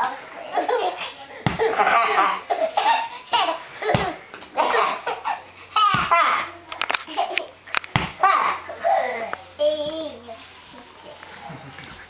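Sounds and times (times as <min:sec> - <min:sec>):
sharp thumps: 0:01.4 - 0:02.0, 0:03.8 - 0:04.5, 0:05.8 - 0:06.6, 0:07.8 - 0:08.6.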